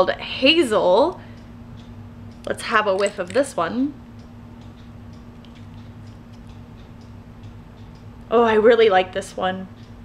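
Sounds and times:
steady low hum: 0.0 - 10.0
faint light ticks: 9.8 - 10.0.

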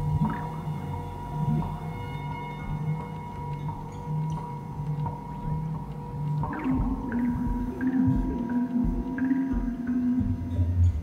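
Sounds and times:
ambient electric guitar drones: 0.0 - 11.0.

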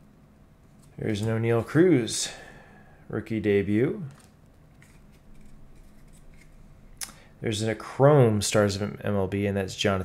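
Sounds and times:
cards sliding and rustling: 4.2 - 6.6.

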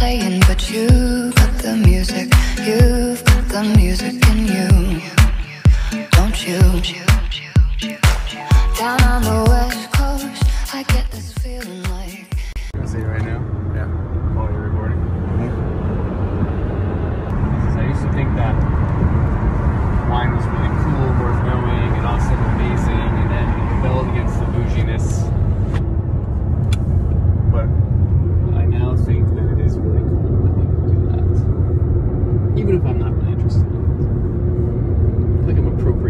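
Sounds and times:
car road and engine rumble: 12.6 - 36.0
man talking: 12.8 - 15.6, 17.3 - 18.6, 20.1 - 25.3, 28.5 - 31.5, 32.6 - 33.6, 35.4 - 36.0.

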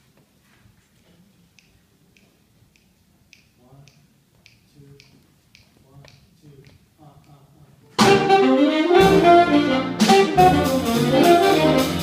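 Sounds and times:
fingers snapping a beat: 1.5 - 7.4.

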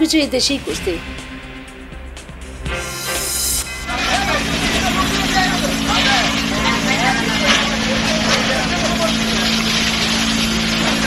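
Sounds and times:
engine drone: 2.2 - 11.0
transition whoosh: 2.5 - 4.0
crowd of overlapping voices: 3.8 - 11.0.

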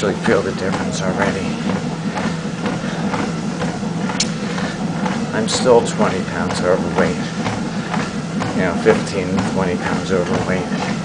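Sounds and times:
treadmill motor humming: 0.0 - 11.0.

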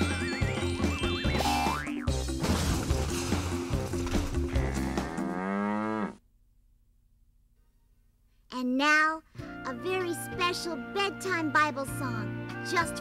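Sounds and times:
bouncy cartoon music: 0.0 - 5.4, 9.4 - 13.0
cartoon cow mooing: 4.5 - 6.2.

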